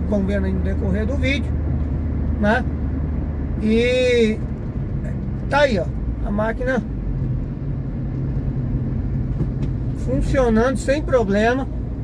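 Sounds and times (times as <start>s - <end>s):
constant low hum: 0.0s - 12.0s
engine and road rumble: 0.0s - 12.0s.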